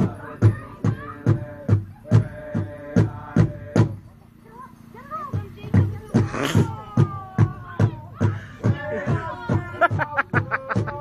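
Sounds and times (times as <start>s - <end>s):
large drum beating: 0.0s - 4.1s, 5.1s - 11.0s
group singing: 0.0s - 4.4s, 5.9s - 11.0s
voices: 0.0s - 11.0s.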